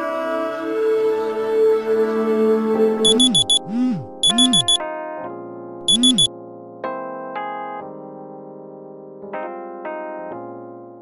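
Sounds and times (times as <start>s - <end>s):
phone alarm high beeps: 3.0s - 4.8s, 5.9s - 6.3s.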